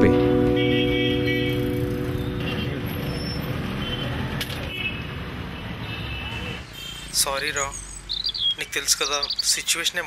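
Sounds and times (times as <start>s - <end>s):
passing traffic rumble: 0.0s - 10.0s.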